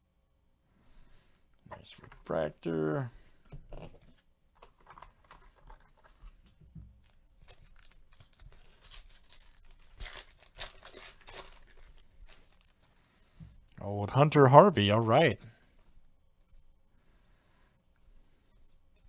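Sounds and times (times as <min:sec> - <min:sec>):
foil wrapper tearing and crinkling: 0:07.0 - 0:12.9.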